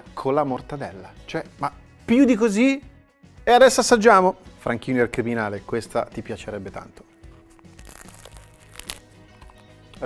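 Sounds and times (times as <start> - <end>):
quiet background music: 0.0 - 10.0
crunch of biting crust: 7.4 - 10.0.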